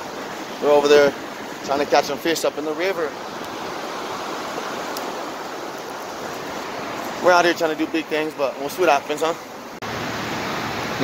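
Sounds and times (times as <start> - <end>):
river rushing over rapids: 0.0 - 11.0.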